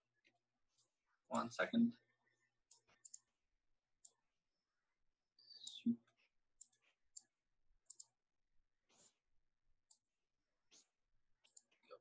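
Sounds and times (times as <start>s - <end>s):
computer mouse clicks: 2.7s - 3.3s, 4.0s - 4.2s, 5.4s - 8.2s, 9.8s - 10.1s, 10.7s - 11.8s.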